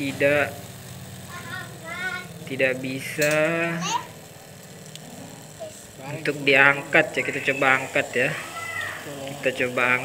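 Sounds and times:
small water pump motor running: 0.0 - 10.0.

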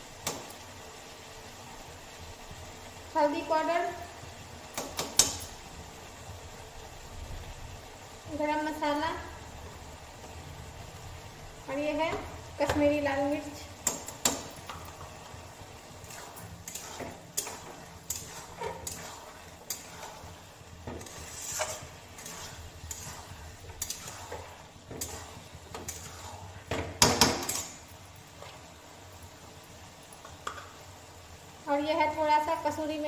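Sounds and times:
metal spatula scraping metal pan: 15.8 - 26.7.

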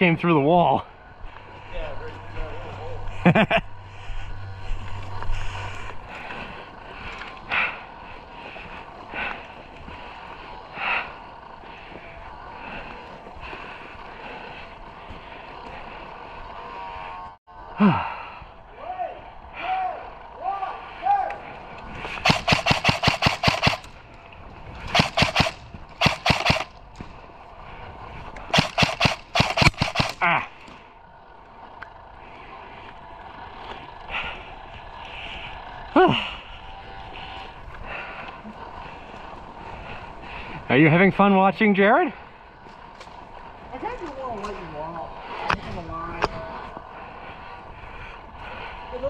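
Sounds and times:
airsoft rifle full-auto bursts: 22.2 - 24.0, 24.9 - 26.8, 28.5 - 30.3.

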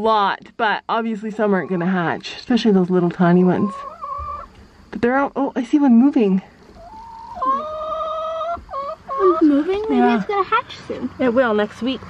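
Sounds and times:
animal calling: 3.4 - 4.5, 6.8 - 11.3.

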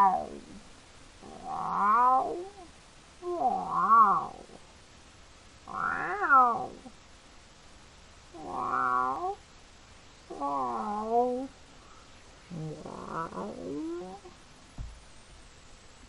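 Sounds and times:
young lion calling: 1.2 - 2.6, 5.7 - 6.9, 8.4 - 9.4, 10.3 - 11.5, 12.5 - 14.3.

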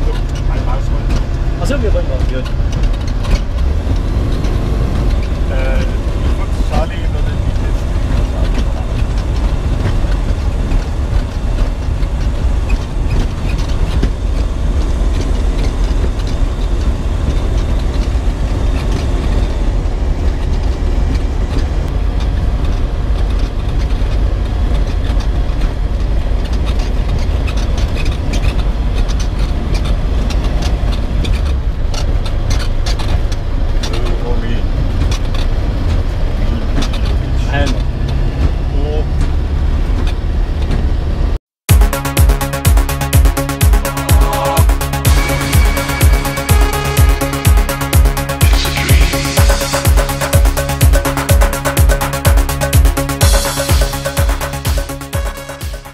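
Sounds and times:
propeller engine running: 0.0 - 38.7, 39.3 - 55.9.

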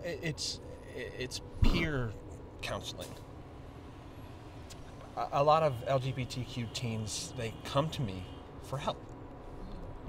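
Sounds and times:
low urban rumble: 0.0 - 10.0.

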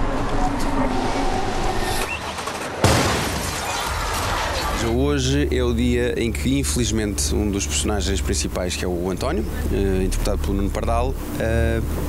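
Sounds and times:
car bomb explosion: 2.8 - 4.8.

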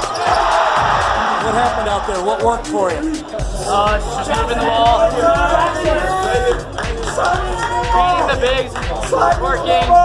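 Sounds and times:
crowd noise in gymnasium: 0.0 - 10.0.

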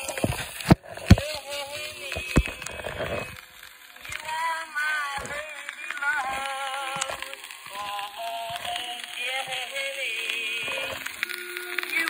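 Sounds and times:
old phonograph song recording: 0.0 - 12.0.

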